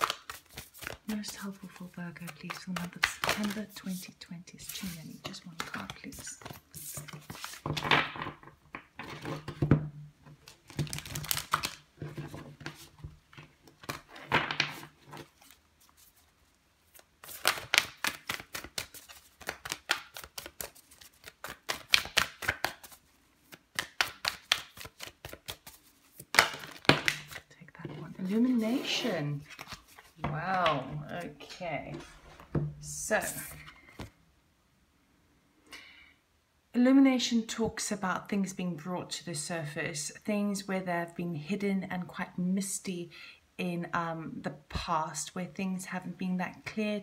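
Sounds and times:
cards shuffled by hand: 0:00.0 - 0:07.9, 0:10.5 - 0:27.5, 0:28.1 - 0:32.6, 0:33.2 - 0:34.2.

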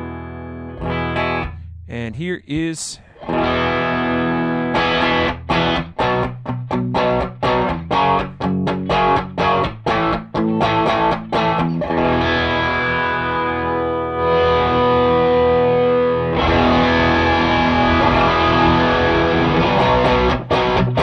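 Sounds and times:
overdriven electric guitar chords: 0:00.0 - 0:01.9, 0:03.0 - 0:21.0.

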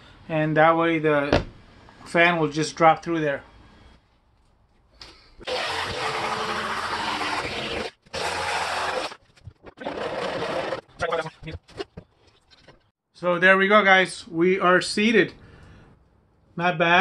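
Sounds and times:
power tool cutting sheet metal: 0:05.4 - 0:09.2, 0:09.8 - 0:10.9.

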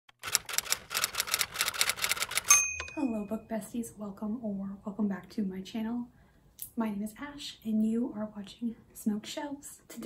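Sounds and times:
typewriter keys clacking: 0:00.2 - 0:03.0.

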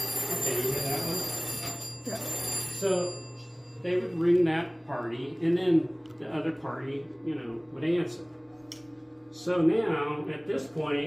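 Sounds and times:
telephone bell ringing: 0:00.0 - 0:04.4.

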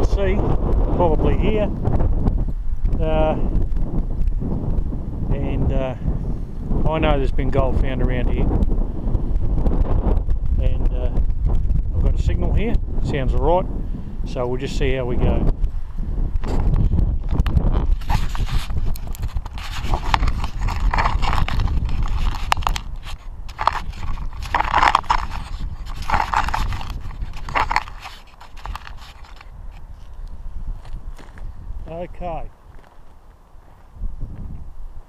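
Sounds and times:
wind buffeting microphone: 0:00.0 - 0:35.0
camera scraping and knocking on gravel: 0:16.4 - 0:34.6.

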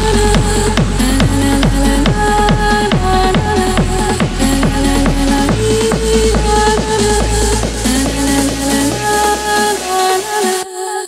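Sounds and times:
hard techno dance track: 0:00.0 - 0:10.6
heavy bass: 0:00.0 - 0:10.6.

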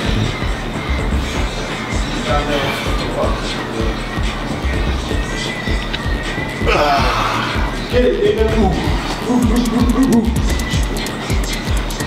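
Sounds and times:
ticking cymbals: 0:08.8 - 0:12.0.

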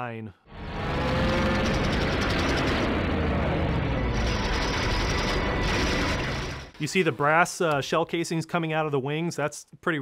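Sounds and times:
piston fighter engines roaring: 0:00.5 - 0:06.8
machine-gun fire: 0:01.0 - 0:03.2, 0:04.1 - 0:06.7.

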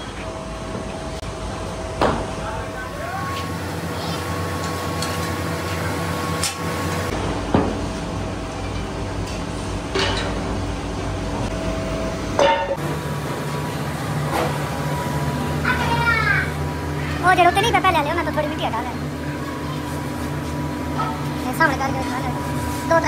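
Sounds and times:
low machine hum: 0:00.0 - 0:23.0.

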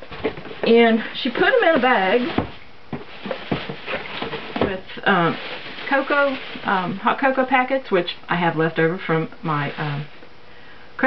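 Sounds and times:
plastic bag rustling: 0:00.0 - 0:07.9, 0:09.5 - 0:10.3
cardboard boxes knocking on table: 0:01.4 - 0:06.4.

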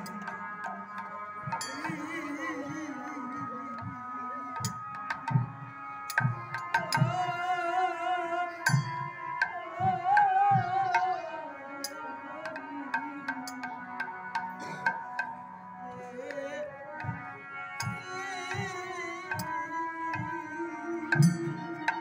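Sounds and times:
person singing wavering melody: 0:00.0 - 0:05.1, 0:06.5 - 0:22.0
harmonium chords: 0:00.0 - 0:22.0.

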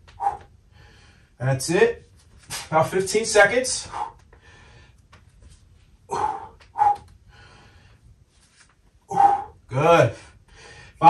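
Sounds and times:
person breathing hard: 0:00.1 - 0:01.4, 0:03.8 - 0:05.0, 0:06.1 - 0:08.1, 0:09.1 - 0:11.0.

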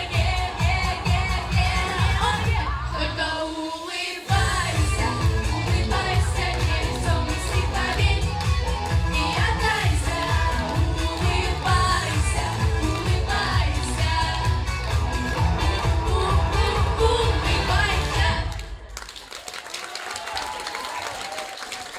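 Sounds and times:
amplified pop music with beat: 0:00.0 - 0:18.6
girls singing pop song: 0:00.0 - 0:18.8
audience applauding: 0:18.5 - 0:21.9.

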